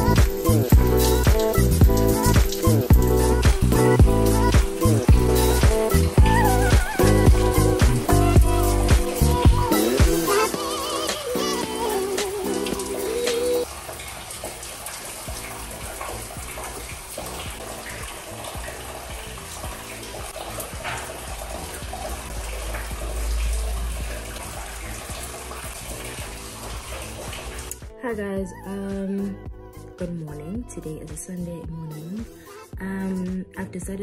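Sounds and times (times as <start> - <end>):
background music: 0.0 - 13.7, 15.3 - 34.0
shower running: 0.0 - 27.9.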